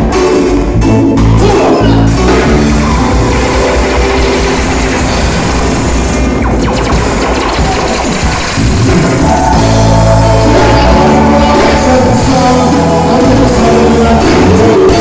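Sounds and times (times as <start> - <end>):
live reggae band playing: 0.0 - 15.0.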